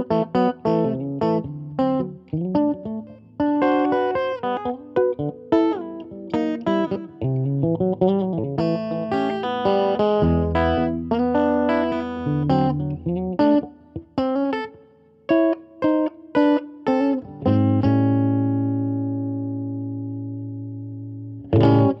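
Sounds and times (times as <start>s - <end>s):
clean electric guitar: 0.0s - 22.0s.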